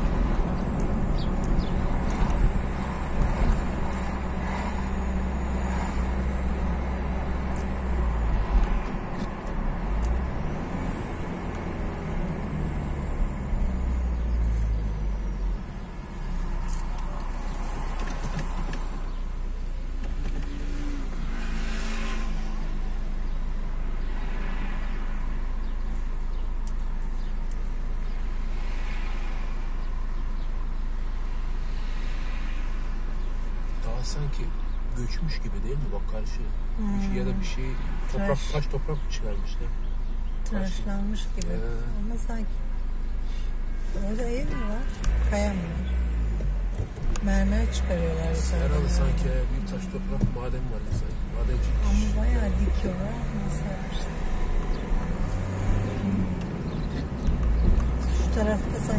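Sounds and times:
car engine idling hum: 0.0s - 21.5s, 22.1s - 58.9s
car engine and road noise: 0.0s - 58.9s.

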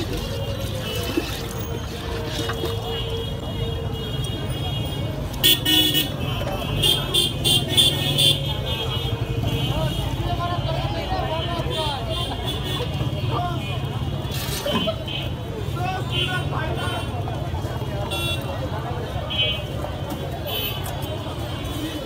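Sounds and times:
street traffic rumble: 0.0s - 22.0s.

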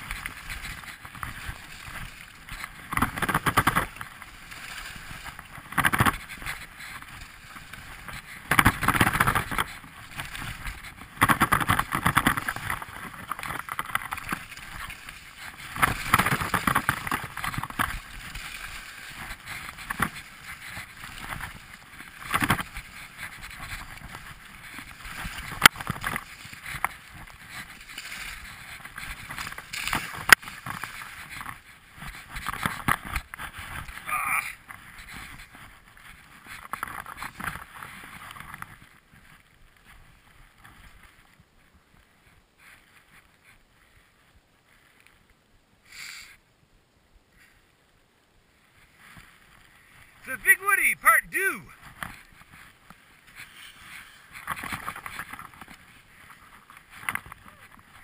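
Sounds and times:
skis scraping over snow: 0.0s - 46.4s, 47.3s - 58.0s.

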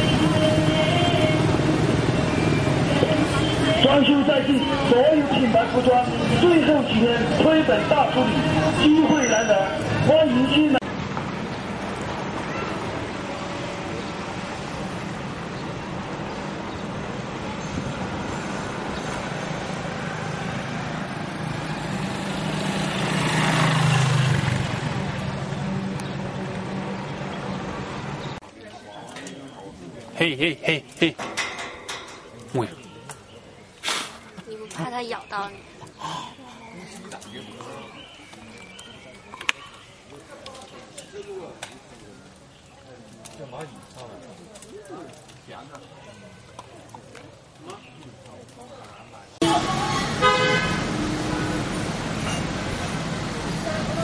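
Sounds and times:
vehicle engine hum: 0.0s - 9.0s, 9.7s - 28.4s, 49.4s - 54.0s
road noise rushing: 0.0s - 28.4s, 49.2s - 54.0s
faint voices: 28.4s - 51.7s
person laughing: 30.2s - 31.2s.

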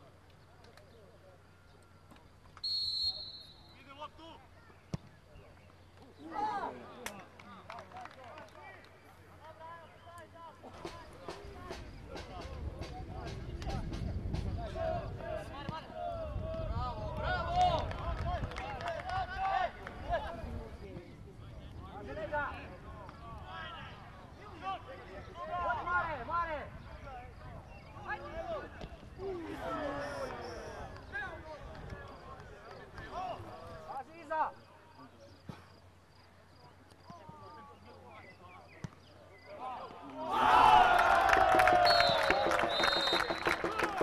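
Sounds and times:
crowd shouting and cheering: 39.6s - 44.0s.

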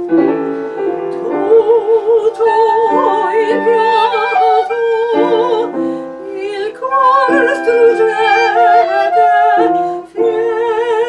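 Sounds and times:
clarinet: 0.0s - 11.0s
soprano singing: 0.0s - 11.0s
upright piano: 0.0s - 11.0s.

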